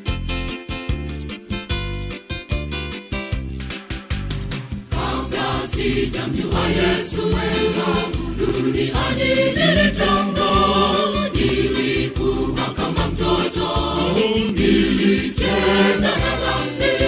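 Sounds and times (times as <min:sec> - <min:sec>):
choir singing gospel: 0:04.9 - 0:17.0.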